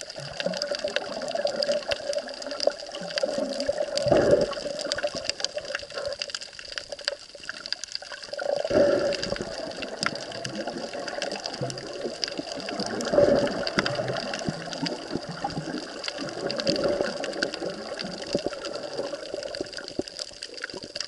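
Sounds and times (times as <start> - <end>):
bubbling surges: 0.0 - 21.0
underwater water wash: 0.0 - 21.0.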